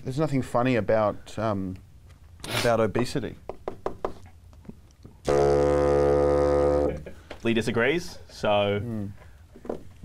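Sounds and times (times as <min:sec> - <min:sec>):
bassoon low note: 0:05.3 - 0:07.1.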